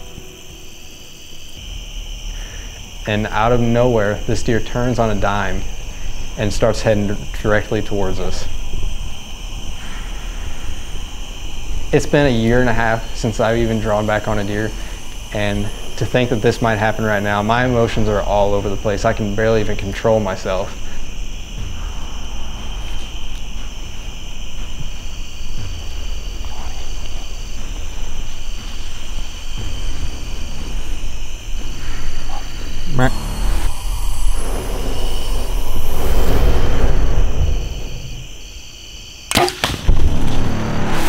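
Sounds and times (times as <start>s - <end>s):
rustling noise: 19.4s - 33.7s
bowstring snap: 39.3s - 40.4s.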